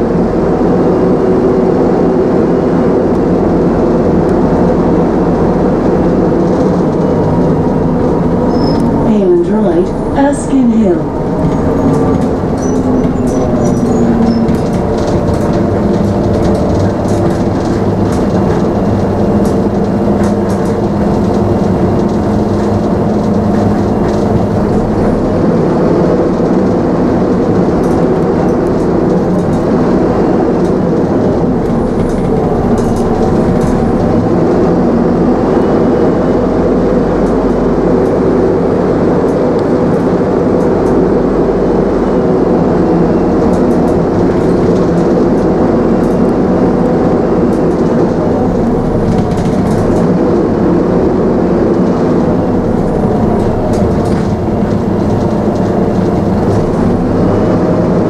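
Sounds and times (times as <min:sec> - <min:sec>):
bus engine drone: 0:00.0 - 0:58.0
road noise: 0:00.0 - 0:58.0.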